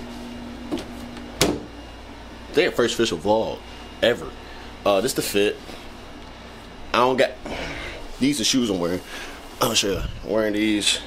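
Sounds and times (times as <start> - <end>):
air conditioner humming: 0.0 - 11.0.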